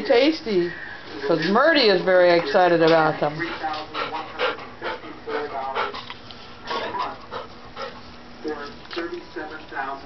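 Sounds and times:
dog panting: 1.3 - 9.1.

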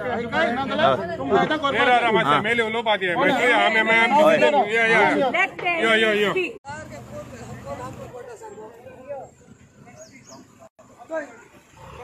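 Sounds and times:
men shouting: 0.0 - 6.5.

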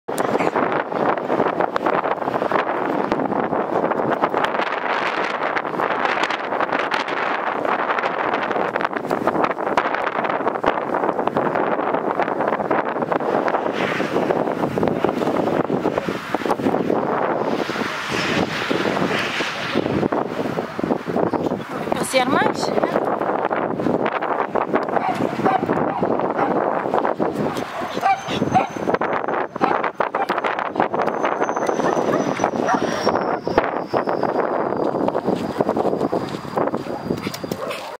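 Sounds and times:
wind buffeting microphone: 0.1 - 37.9.

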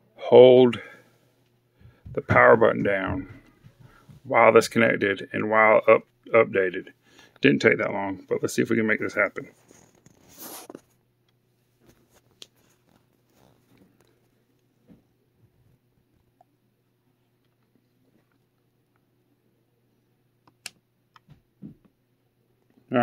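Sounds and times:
faint low hum: 0.0 - 23.0
fingers rustling on phone: 9.4 - 11.0, 11.7 - 14.6.

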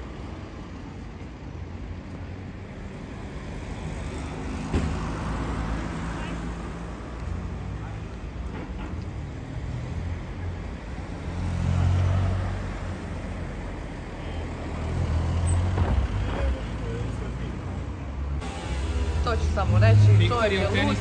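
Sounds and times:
street traffic rumble: 0.0 - 21.0
vehicles passing: 0.0 - 21.0.

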